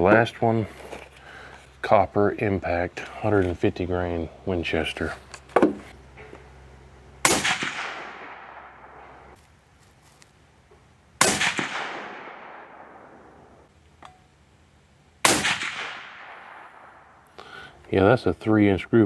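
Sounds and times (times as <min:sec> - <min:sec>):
suppressed rifle shots echoing: 0:07.2 - 0:09.4, 0:11.2 - 0:13.7, 0:15.2 - 0:17.2.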